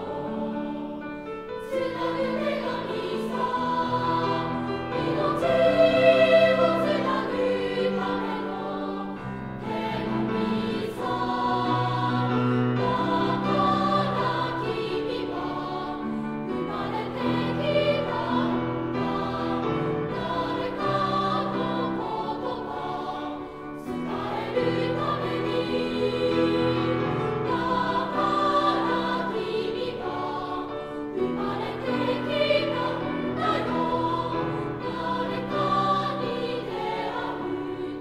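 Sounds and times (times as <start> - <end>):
children's choir singing: 0.0 - 38.0.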